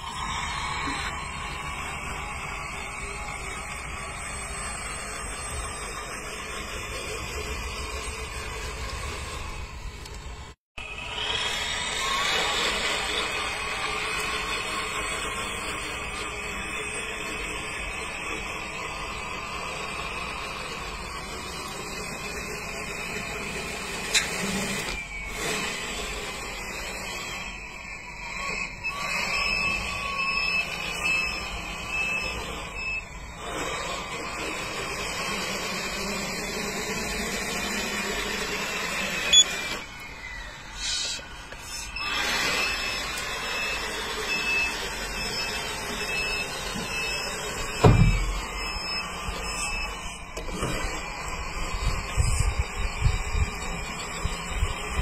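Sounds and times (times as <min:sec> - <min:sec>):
electric motors whining: 0:00.0 - 0:55.0.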